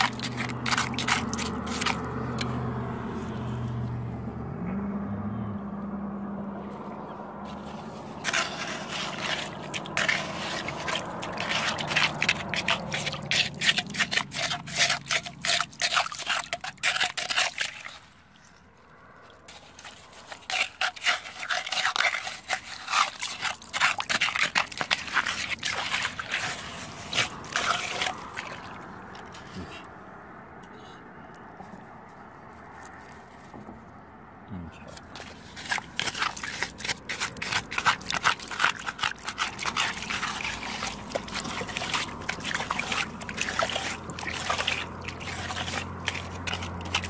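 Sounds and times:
hand squelching through wet mud: 0.0 - 2.6, 7.4 - 30.0, 34.9 - 47.0.

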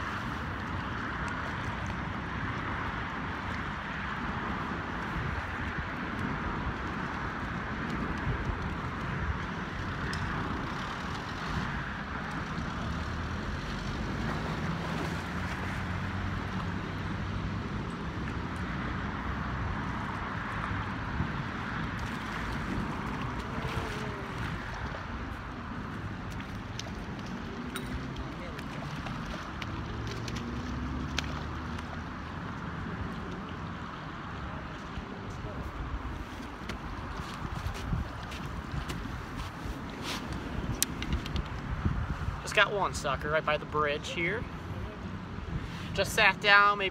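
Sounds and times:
road traffic on bridge: 0.0 - 46.9
river water rushing: 9.1 - 37.2.

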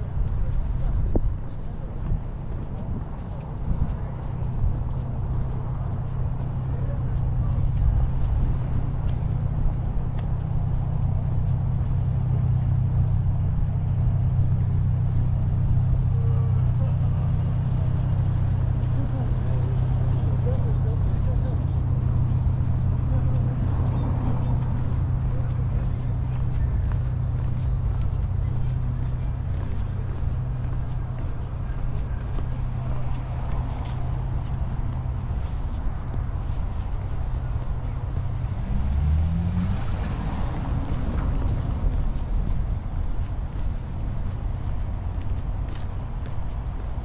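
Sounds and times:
wind buffeting microphone: 0.0 - 16.0
faint distant voices: 0.0 - 47.0.

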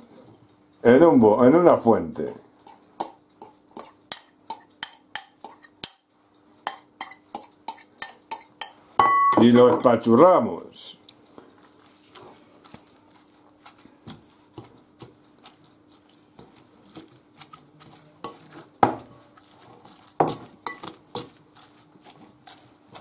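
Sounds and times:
fork clinking and scraping glass: 20.2 - 21.4.

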